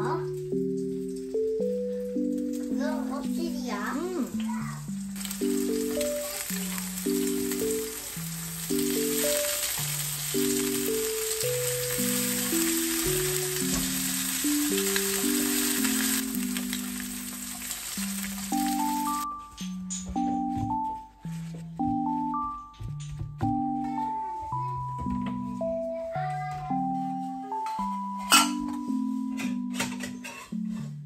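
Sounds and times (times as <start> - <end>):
cheerful plinking background music: 0.0 - 31.0
meat sizzling in a frying pan: 3.7 - 19.3.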